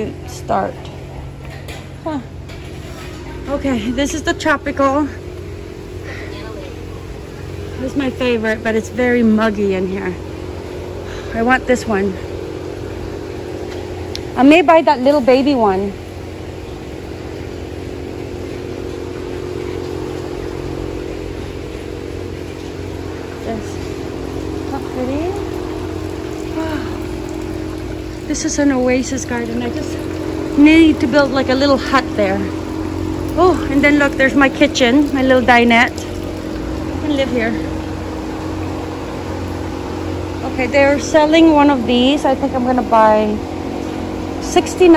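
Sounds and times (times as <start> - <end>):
machinery humming: 0.0 - 44.9.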